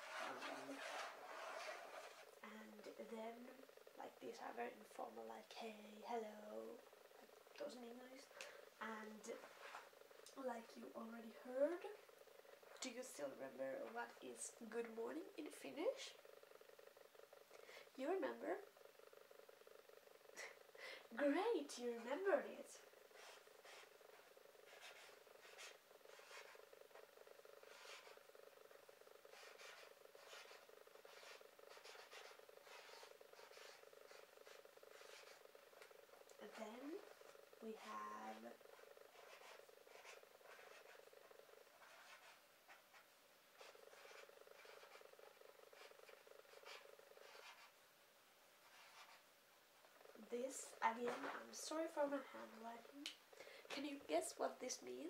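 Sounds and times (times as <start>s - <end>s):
marker scratching on paper: 0.0s - 2.4s, 23.1s - 27.0s, 27.6s - 28.2s, 29.3s - 35.5s, 36.4s - 41.1s, 41.8s - 47.8s, 48.6s - 49.2s
steady low hum: 0.0s - 55.0s.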